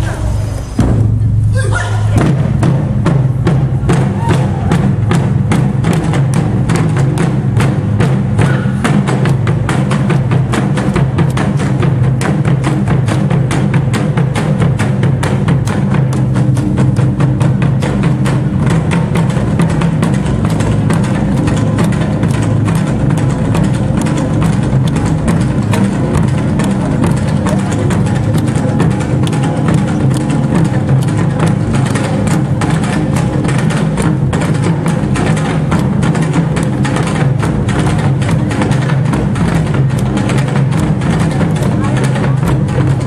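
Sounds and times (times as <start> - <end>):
barrel drums beaten with sticks: 0.0 - 43.0.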